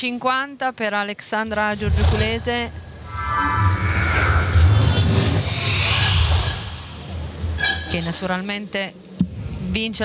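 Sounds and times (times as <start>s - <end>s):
rising swoosh: 2.8s - 7.5s.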